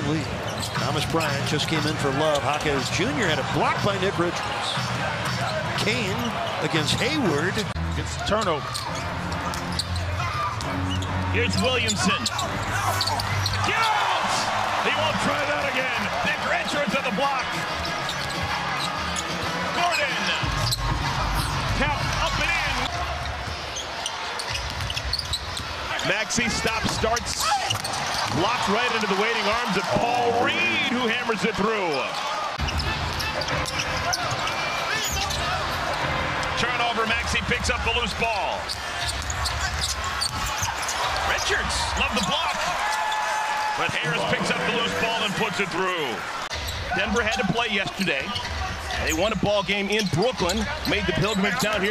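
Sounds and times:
sneakers squeaking: 0.0s - 3.0s, 3.8s - 30.9s, 31.8s - 44.6s, 46.2s - 51.9s
arena crowd noise: 0.0s - 51.9s.

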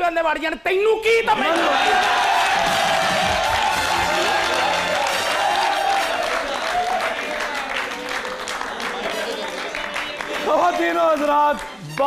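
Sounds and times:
audience applauding: 1.3s - 12.0s
music playing: 1.8s - 12.0s.

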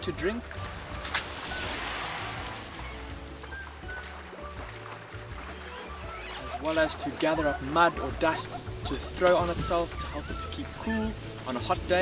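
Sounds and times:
background music: 0.0s - 12.0s
water spraying splash: 0.3s - 5.0s.

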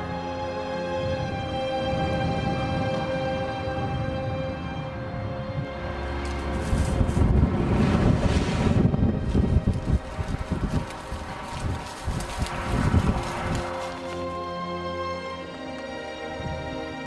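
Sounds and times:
wind buffeting microphone: 0.0s - 15.5s, 16.2s - 17.0s
faint music: 0.0s - 17.0s.

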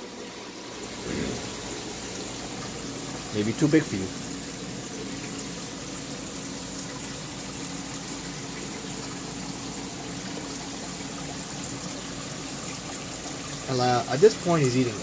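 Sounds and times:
low pump hum: 0.0s - 15.0s
rushing water: 0.0s - 15.0s.

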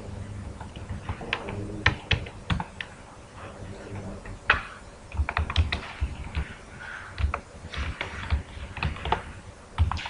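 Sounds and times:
computer keyboard typing: 0.6s - 3.0s, 4.5s - 6.6s, 7.2s - 10.0s.

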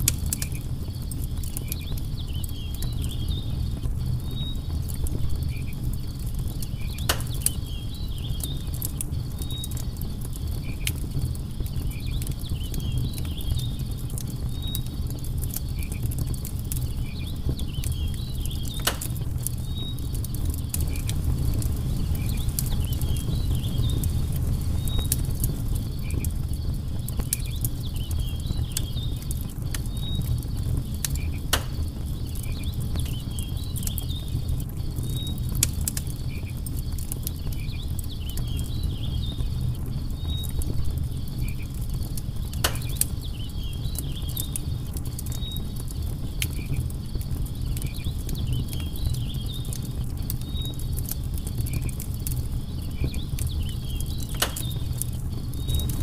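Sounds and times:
campfire crackling and popping: 0.0s - 56.0s
flames rushing: 0.0s - 56.0s
insects chirping: 17.0s - 56.0s.

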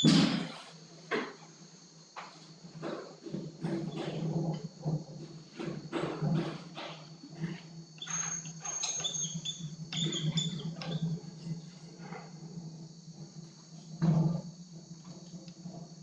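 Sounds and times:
marker squeaking on whiteboard: 8.0s - 11.0s.

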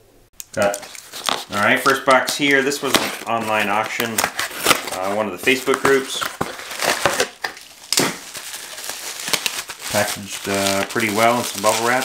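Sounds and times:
bubble wrap crackling: 0.6s - 12.0s.

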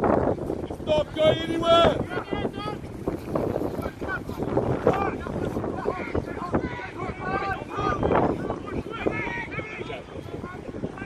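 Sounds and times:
wind buffeting microphone: 0.0s - 11.0s
distant shouts and calls: 3.8s - 11.0s.

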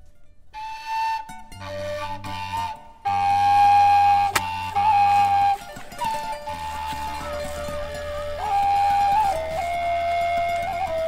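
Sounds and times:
solo flute melody: 0.5s - 11.0s.

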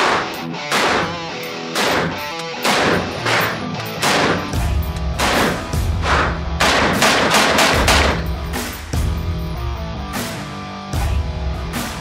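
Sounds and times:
rifle shots echoing indoors: 0.0s - 4.6s, 5.2s - 8.5s
rock music with heavy bass: 0.0s - 12.0s.

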